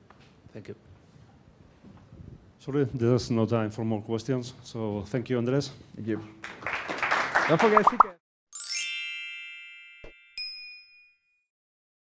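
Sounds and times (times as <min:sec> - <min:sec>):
bright ding: 0:08.6 - 0:11.5.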